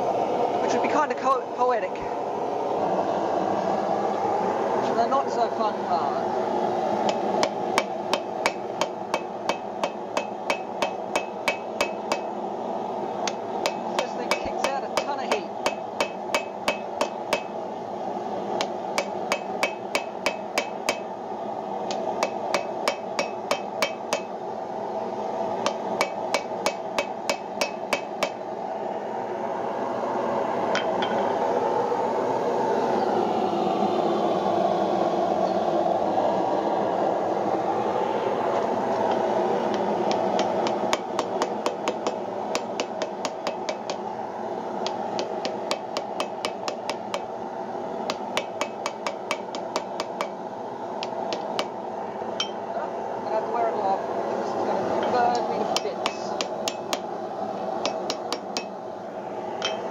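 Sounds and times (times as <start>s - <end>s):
steady rushing noise: 0.0s - 59.9s.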